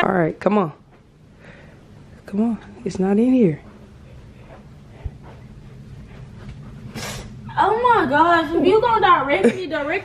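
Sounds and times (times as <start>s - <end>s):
faint footsteps: 0.4s - 9.0s.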